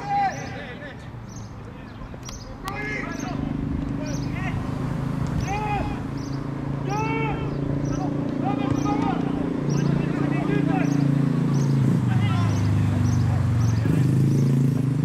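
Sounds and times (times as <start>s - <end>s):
people shouting short calls: 0.0s - 1.0s, 1.6s - 14.2s.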